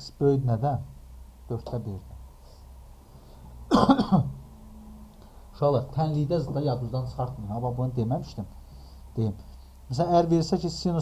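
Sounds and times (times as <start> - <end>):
man coughing: 3.7 - 4.4.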